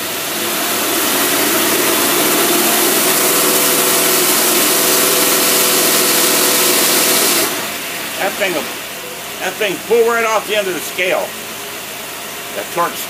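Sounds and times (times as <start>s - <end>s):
engine running at high revs: 0.0s - 12.8s.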